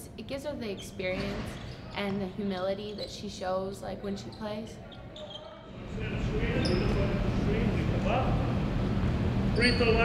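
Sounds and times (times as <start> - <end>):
sneaker squeak: 0.6 - 3.5, 4.2 - 5.8, 6.4 - 7.2, 9.5 - 10.0.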